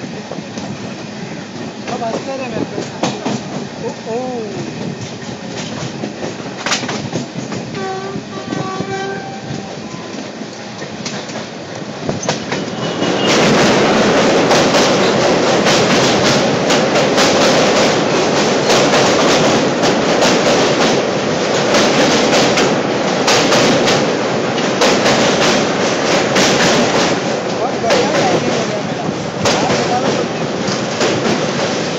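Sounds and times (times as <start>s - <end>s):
passing train rush: 0.0s - 31.9s
train rumble and wheel clatter: 0.0s - 31.9s
train horn: 7.7s - 10.2s.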